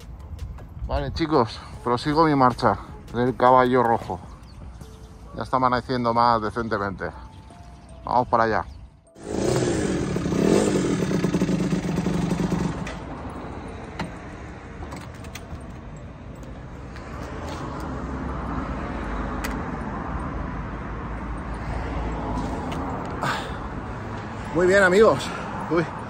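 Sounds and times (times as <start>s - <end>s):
motorcycle engine revving and idling: 9.2s - 13.2s.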